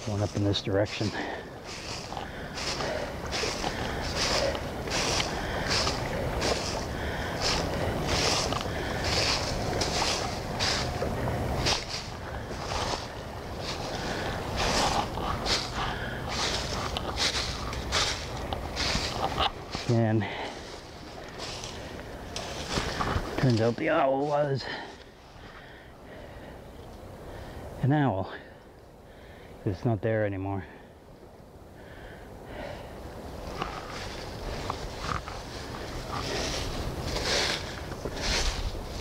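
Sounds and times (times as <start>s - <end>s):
footsteps crunching dry leaves: 0.0s - 25.3s, 33.4s - 39.0s.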